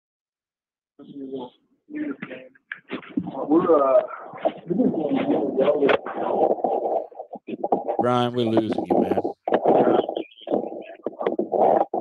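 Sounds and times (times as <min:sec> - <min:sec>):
garbled voice over phone line: 0:07.8 - 0:11.2.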